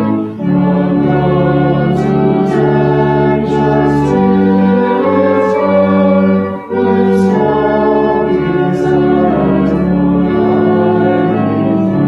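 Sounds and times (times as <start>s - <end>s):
organ playing sustained chords: 0.0s - 12.0s.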